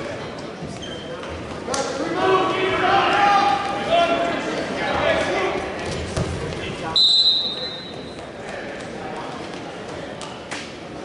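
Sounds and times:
referee's whistle: 7.0 - 8.0.

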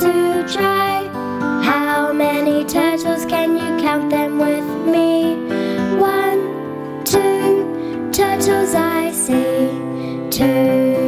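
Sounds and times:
gentle children's song music: 0.0 - 11.0.

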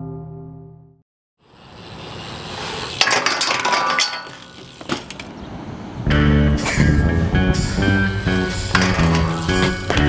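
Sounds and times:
outdoor background noise: 1.4 - 10.0.

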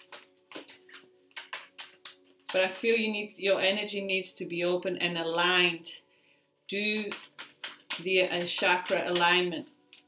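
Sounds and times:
cards being shuffled: 0.0 - 3.1, 6.9 - 10.0.

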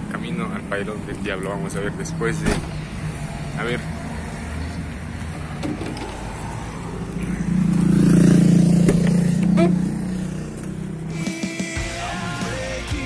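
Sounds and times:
traffic noise: 0.0 - 13.0.

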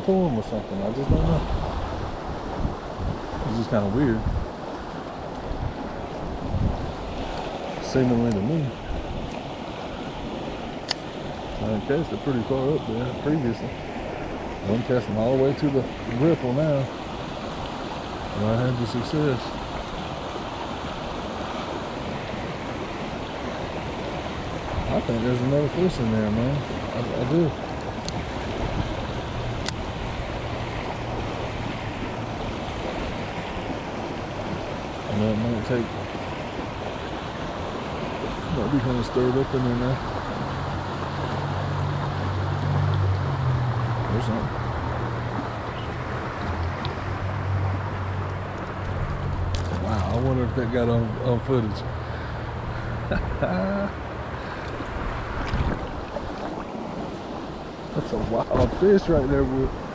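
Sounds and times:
creek rushing: 0.0 - 59.9
wind buffeting microphone: 0.0 - 59.9.

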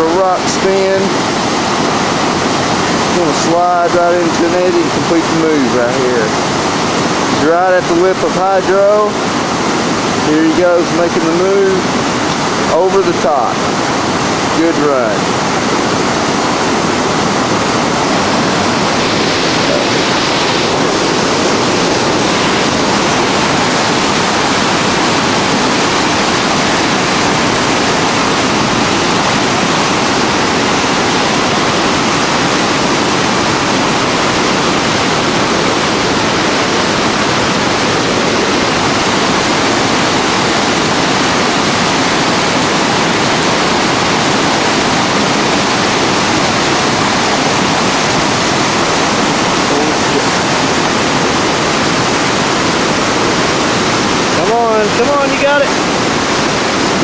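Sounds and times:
rushing river rapids: 0.0 - 57.0.

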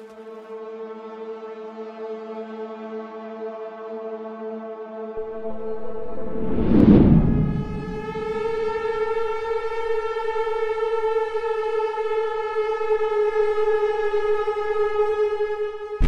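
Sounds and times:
long droning note: 4.2 - 16.0
loud orchestral swell: 5.2 - 9.2.

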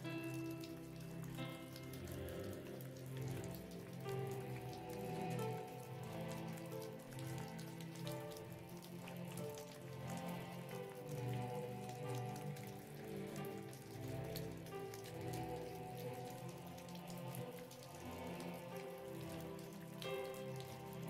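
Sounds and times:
rain patter: 0.0 - 21.0
slow ambient music: 0.0 - 21.0.

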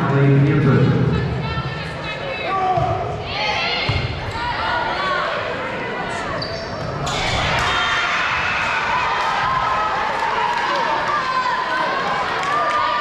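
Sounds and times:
spectators shouting: 7.0 - 13.0.

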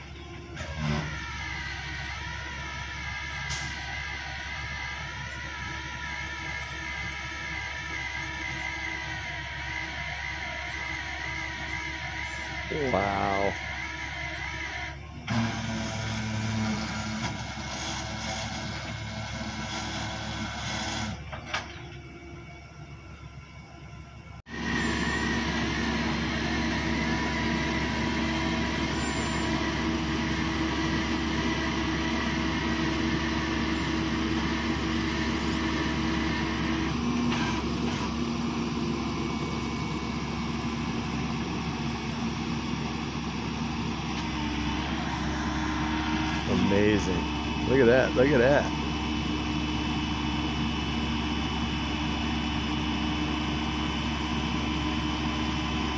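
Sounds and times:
truck engine idling: 0.0 - 55.9.

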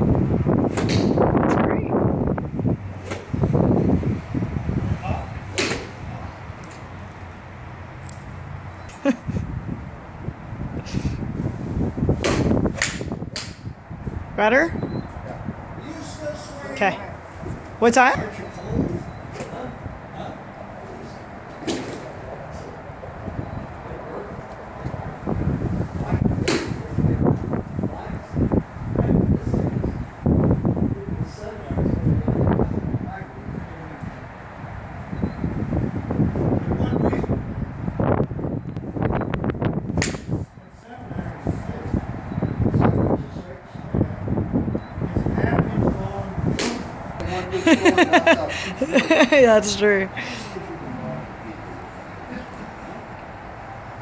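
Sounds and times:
golf club striking ball: 0.7 - 1.2, 5.5 - 6.0, 12.2 - 13.6, 26.4 - 26.8, 40.0 - 40.3, 46.6 - 47.0
sharp crack: 12.2 - 13.6, 40.0 - 40.3, 46.6 - 46.9
low murmuring background: 18.2 - 34.5, 44.9 - 53.4.

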